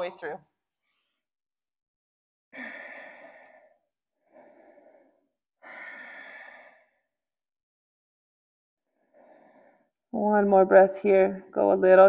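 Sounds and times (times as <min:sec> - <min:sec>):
woman breathing deeply: 0:02.6 - 0:07.2, 0:08.9 - 0:10.0.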